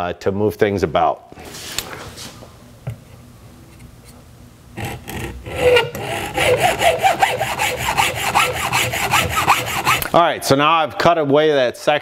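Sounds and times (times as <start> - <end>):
hacksaw cutting metal pipe: 4.8 - 10.1.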